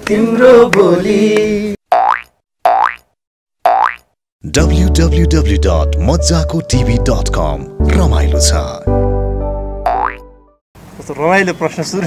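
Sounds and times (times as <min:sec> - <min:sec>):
cartoon boing sound effects: 0:01.9 - 0:03.1, 0:03.7 - 0:04.2, 0:09.9 - 0:10.2.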